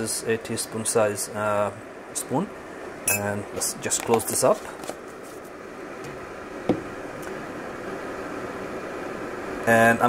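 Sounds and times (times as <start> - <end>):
electric kettle hissing: 0.0 - 10.0.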